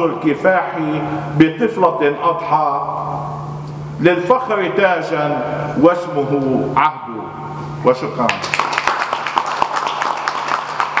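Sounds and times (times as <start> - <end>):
audience clapping: 8.2 - 11.0.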